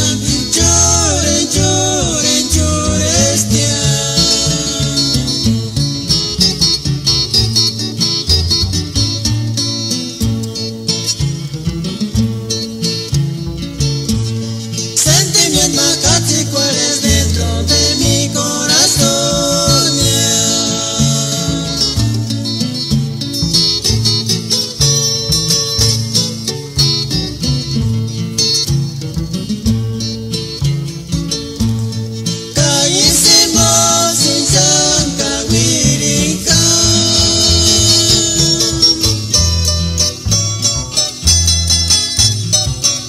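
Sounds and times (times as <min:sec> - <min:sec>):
acoustic guitars strumming: 0:00.0 - 0:43.0
bass notes: 0:00.0 - 0:43.0.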